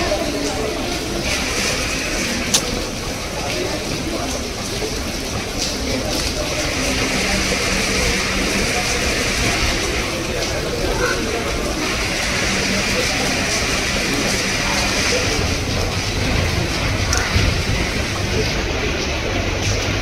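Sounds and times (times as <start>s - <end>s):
indistinct background voices: 0.0s - 20.0s
noisy hubbub: 0.0s - 20.0s.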